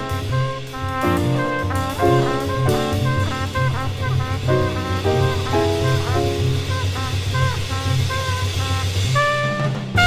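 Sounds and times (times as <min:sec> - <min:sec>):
jazz trumpet phrases: 0:00.0 - 0:10.0
pulsing bass figure: 0:01.3 - 0:07.9.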